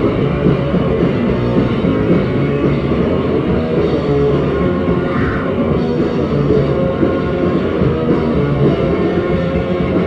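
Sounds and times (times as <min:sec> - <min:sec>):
drums: 0:00.0 - 0:10.0
electric guitar: 0:00.0 - 0:10.0
punk band playing live: 0:00.0 - 0:10.0.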